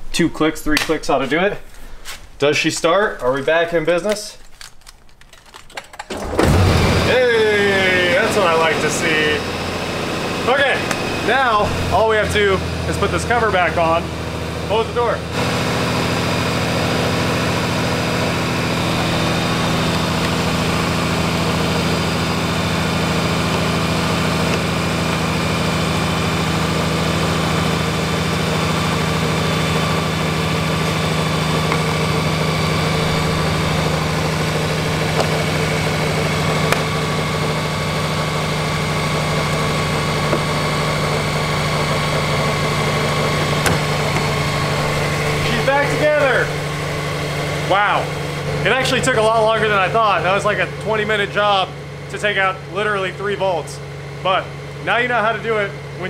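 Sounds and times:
motorcycle engine idling: 17.6 - 52.7.

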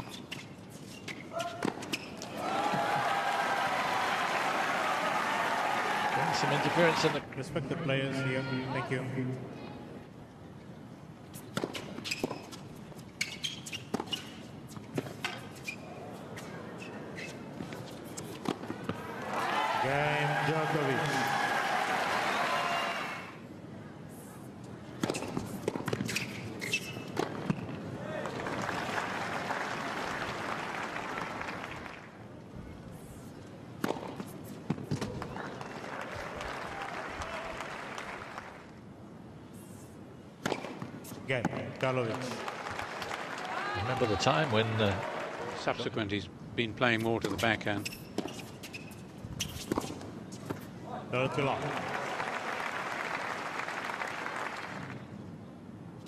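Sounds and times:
crowd applause and cheering: 2.2 - 7.2, 19.2 - 23.4, 28.3 - 32.0, 35.4 - 38.6, 42.2 - 45.8, 51.4 - 55.0
tennis ball bounces: 33.8 - 35.3, 40.4 - 41.6.

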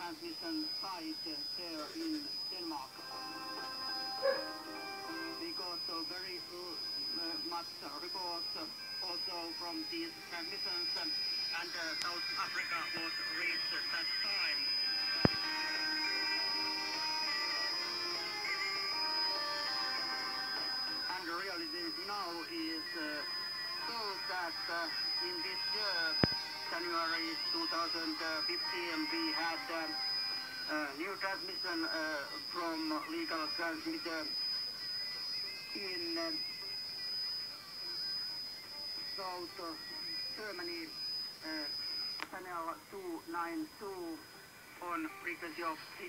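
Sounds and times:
music through radio speaker: 0.0 - 46.0
high-pitched whistle: 3.0 - 42.4.

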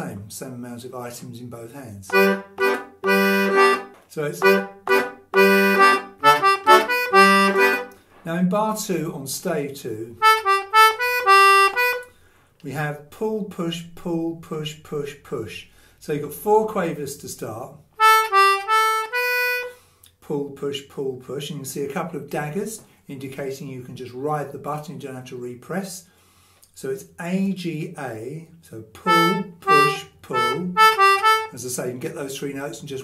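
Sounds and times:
button accordion playing tune: 2.1 - 8.0, 10.2 - 12.1, 18.0 - 19.8, 29.0 - 31.6.

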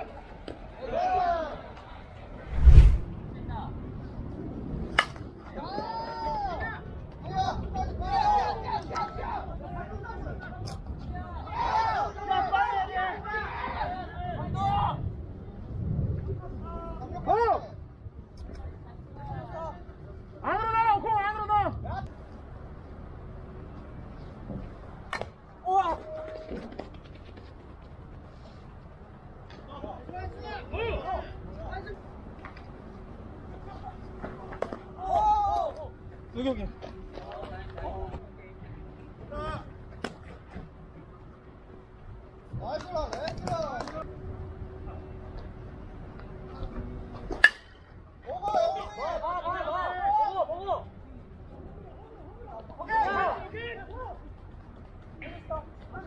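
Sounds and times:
players shouting: 11.4 - 14.8
bat hitting ball crack: 47.3 - 47.8.

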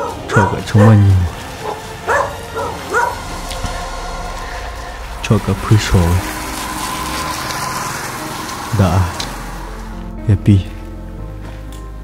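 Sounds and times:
man talking: 0.3 - 1.4, 5.1 - 6.3, 10.2 - 10.8.

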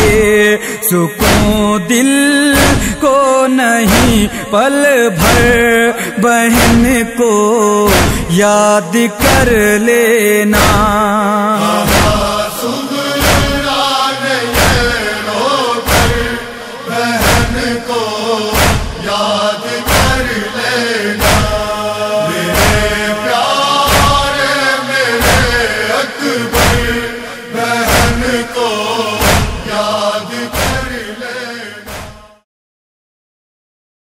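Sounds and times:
heavy chest-beating rhythm: 0.0 - 3.2, 3.9 - 4.5, 5.2 - 7.1, 7.9 - 8.4, 9.2 - 9.8, 10.6 - 31.2
wordless lament chant: 0.0 - 32.5.

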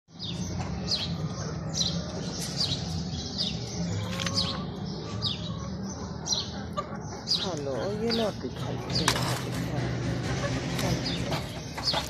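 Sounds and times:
steady low rumble: 8.4 - 12.0.

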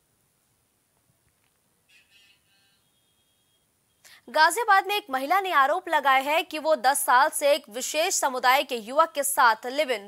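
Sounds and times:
faint high-pitched tone: 1.8 - 4.1.

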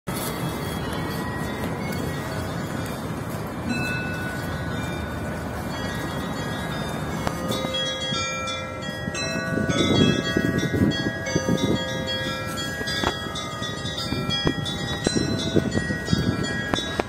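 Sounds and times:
church bells ringing: 0.1 - 17.0
steady background noise: 0.1 - 17.0.

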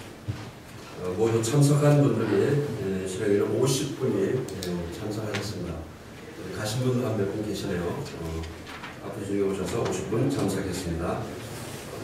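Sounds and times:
man speaking into a microphone: 0.9 - 12.0.

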